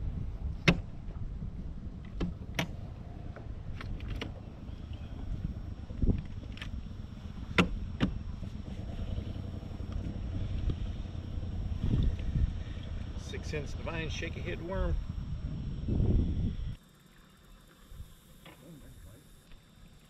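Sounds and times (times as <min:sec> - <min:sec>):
wind rumble on microphone: 0:00.0 - 0:16.8.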